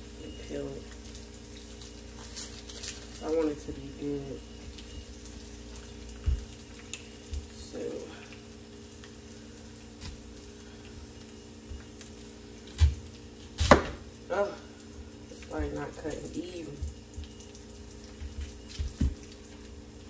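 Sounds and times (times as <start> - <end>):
knife slicing onion: 12.7 - 14.0.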